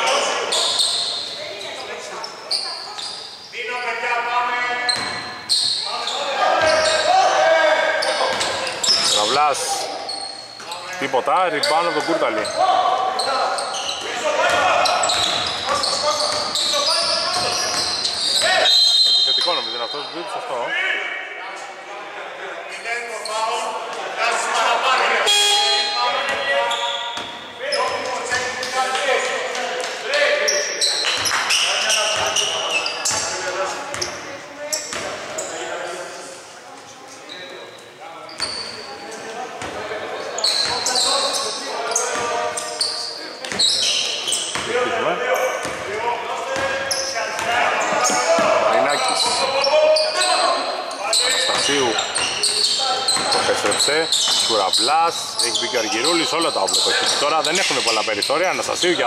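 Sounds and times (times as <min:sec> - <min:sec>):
voices calling out: 0:00.0 - 0:21.3, 0:38.2 - 0:59.0.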